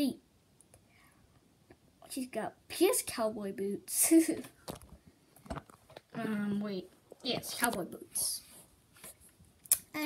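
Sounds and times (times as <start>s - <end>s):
person speaking: 6.0s - 8.6s.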